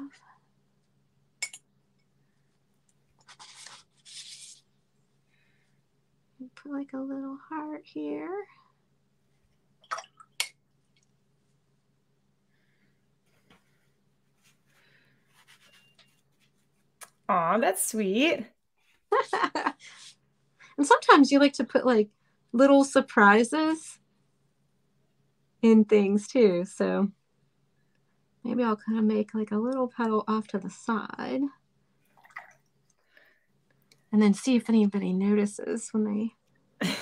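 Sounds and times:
faint low hum: 0:00.0 - 0:37.0
paintbrush scratching paper: 0:03.2 - 0:04.7, 0:14.4 - 0:16.9, 0:19.2 - 0:20.2
faint soft sounds: 0:10.8 - 0:17.0.

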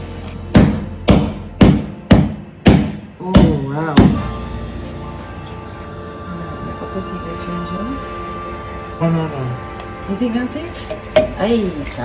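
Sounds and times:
background music: 0:00.0 - 0:12.0
pounding on wooden board: 0:00.5 - 0:04.2.

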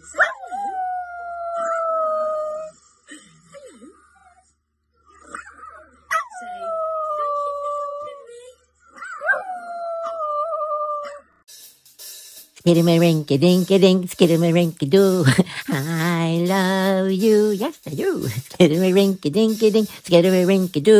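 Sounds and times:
small dog howling: 0:00.0 - 0:02.8, 0:05.2 - 0:08.3, 0:08.9 - 0:11.4
woman laughing: 0:14.9 - 0:16.6.

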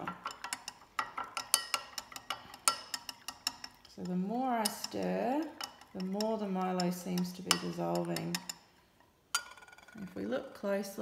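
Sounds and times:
teaspoon clinking in glass: 0:00.0 - 0:03.9, 0:04.6 - 0:08.6.

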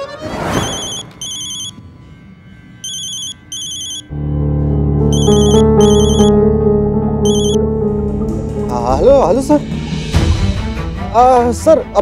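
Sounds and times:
mobile phone ringing: 0:00.5 - 0:01.8, 0:02.8 - 0:04.1, 0:05.1 - 0:06.4, 0:07.2 - 0:07.6.

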